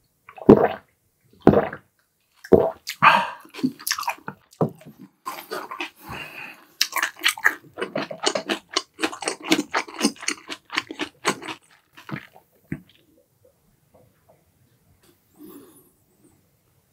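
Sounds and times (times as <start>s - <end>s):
chewing food with wet crunches: 1.4s - 13.2s.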